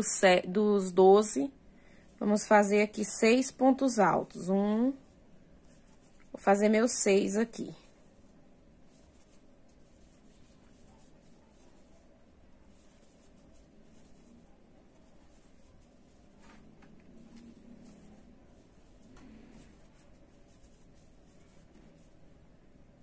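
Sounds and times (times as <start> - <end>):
crochet hook rustling yarn: 0.0 - 23.0.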